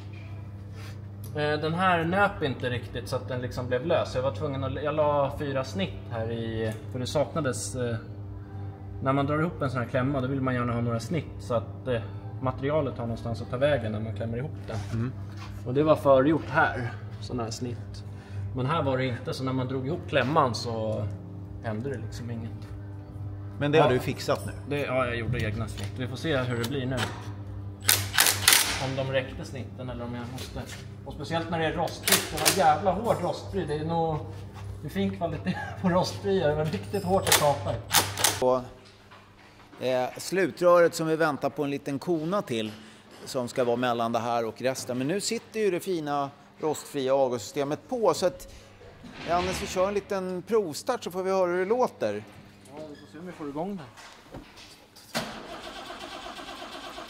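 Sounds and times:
car engine starting and running: 55.2s - 57.0s.

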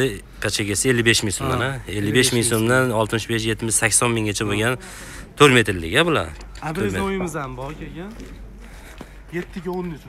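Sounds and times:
man talking: 0.0s - 4.8s, 5.4s - 8.3s, 9.3s - 10.0s.

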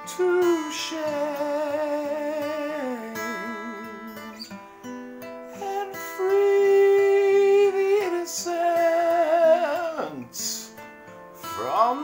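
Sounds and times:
acoustic guitar: 0.0s - 12.0s
man singing long note: 5.6s - 10.6s.

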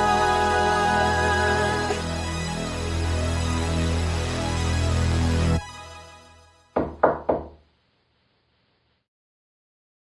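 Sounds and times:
quick knocks: 6.8s - 7.6s.

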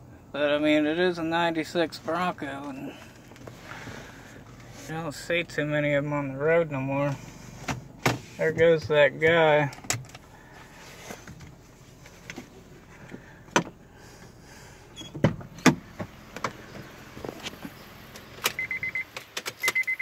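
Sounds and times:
faint steady car hum: 0.0s - 20.0s
handling clicks and knocks: 7.6s - 10.3s
electronic warning chime beeping: 18.6s - 20.0s.

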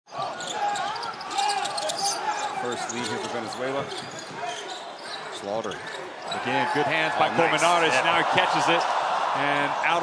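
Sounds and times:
arena voices: 5.8s - 10.0s.

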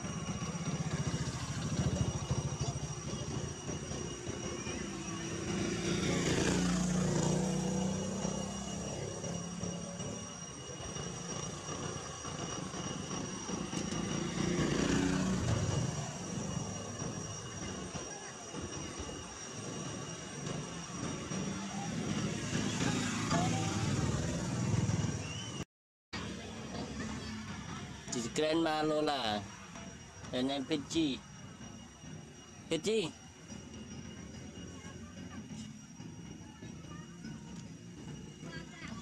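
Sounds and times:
passing motor vehicles: 0.0s - 10.1s, 13.1s - 17.2s, 20.4s - 25.6s.

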